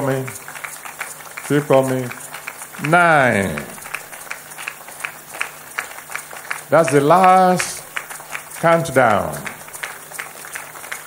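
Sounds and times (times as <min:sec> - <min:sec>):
crowd clapping: 0:00.0 - 0:11.0
faint steady hum: 0:01.3 - 0:10.6
crowd noise: 0:01.5 - 0:04.3, 0:06.7 - 0:09.9.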